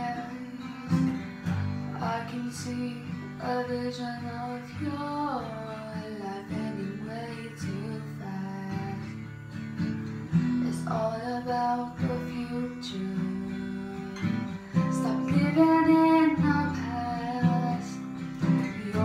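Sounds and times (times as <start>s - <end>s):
woman singing: 0.0s - 9.3s, 10.2s - 19.0s
strummed acoustic guitar: 0.0s - 19.0s.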